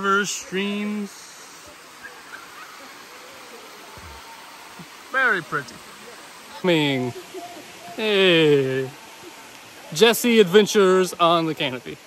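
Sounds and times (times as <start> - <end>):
stream cascading over rocks: 0.0 - 12.0.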